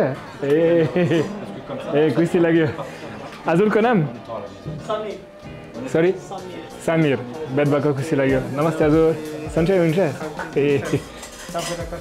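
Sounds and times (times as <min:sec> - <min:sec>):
cutlery and dishes clinking: 0:07.6 - 0:12.0.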